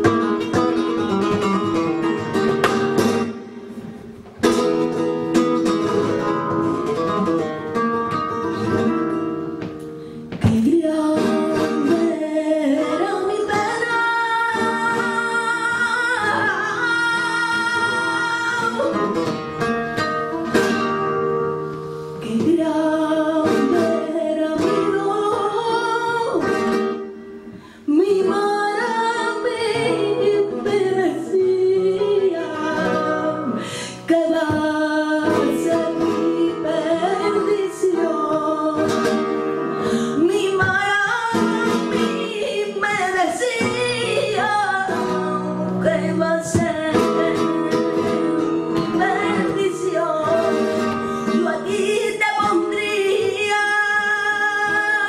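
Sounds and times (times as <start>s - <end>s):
flamenco guitar: 0.0s - 55.0s
woman singing flamenco: 0.0s - 55.0s.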